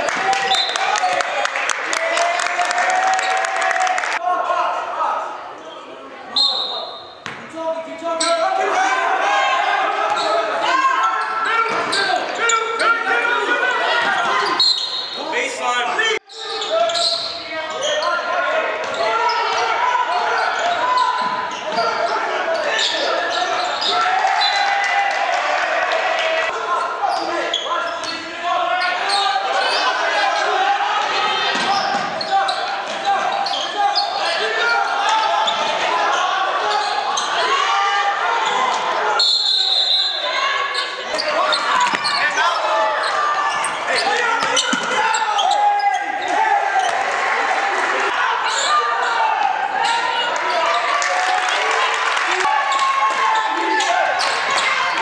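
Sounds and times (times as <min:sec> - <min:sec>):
referee's whistle: 0:00.4 - 0:00.8, 0:06.3 - 0:07.3, 0:14.4 - 0:15.3, 0:39.1 - 0:42.2
players shouting: 0:06.5 - 0:55.0.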